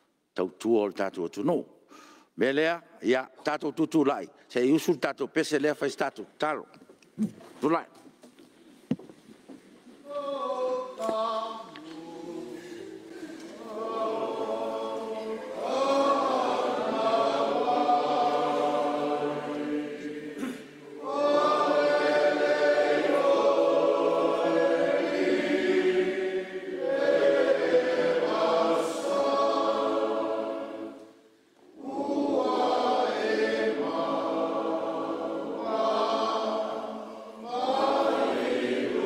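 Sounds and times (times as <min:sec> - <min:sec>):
group singing like a choir: 0:10.1 - 0:39.0.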